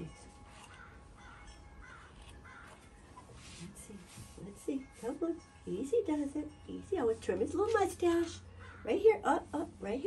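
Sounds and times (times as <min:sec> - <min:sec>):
crow cawing: 0:00.6 - 0:03.0, 0:08.4 - 0:09.1.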